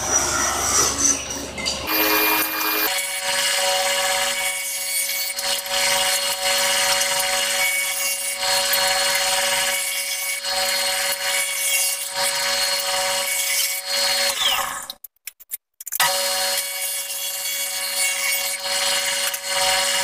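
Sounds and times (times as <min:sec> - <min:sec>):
table saw cutting wood: 0:00.0 - 0:14.9, 0:16.0 - 0:20.0.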